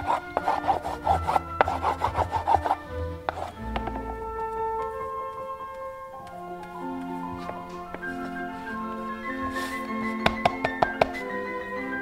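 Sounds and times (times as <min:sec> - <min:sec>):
hand rubbing over paper: 0:00.0 - 0:04.2, 0:07.1 - 0:10.7
soft background music: 0:00.0 - 0:12.0.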